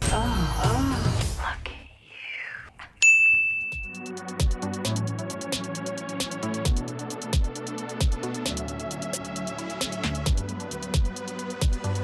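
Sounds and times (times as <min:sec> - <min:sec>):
bright ringing ding: 0:03.0 - 0:04.1.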